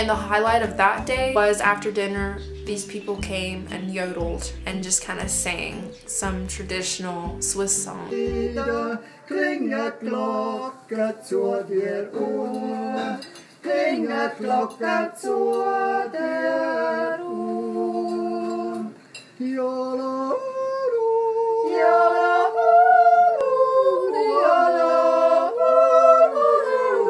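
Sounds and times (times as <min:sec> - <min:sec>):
group singing a cappella harmony: 0:01.6 - 0:27.0.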